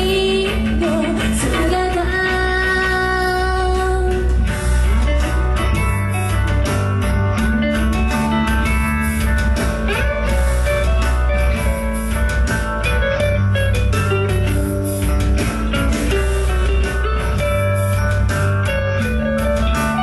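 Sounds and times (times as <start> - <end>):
drum kit: 0.0 - 20.0
electric guitar: 0.0 - 20.0.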